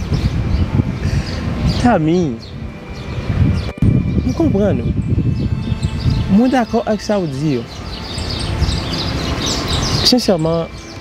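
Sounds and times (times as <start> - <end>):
high-pitched bird chirps: 0.0 - 11.0
outdoor background noise: 0.0 - 11.0.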